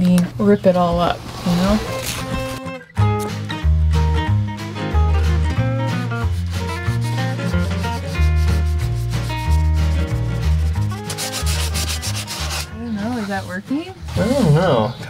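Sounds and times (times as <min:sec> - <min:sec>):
background music with bass line: 0:01.8 - 0:13.3
sandpaper rubbing on wood: 0:06.2 - 0:13.6.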